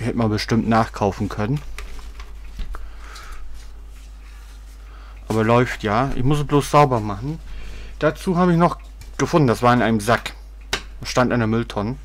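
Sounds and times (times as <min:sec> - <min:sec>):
soft handling rustle: 0:00.7 - 0:10.4.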